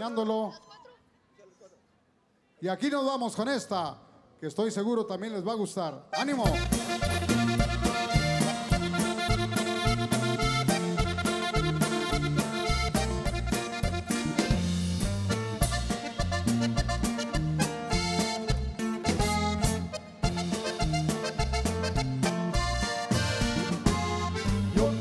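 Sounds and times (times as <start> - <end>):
accordion: 6.0 - 25.0
steady drum beat: 6.4 - 25.0
alternating bass line: 6.5 - 25.0.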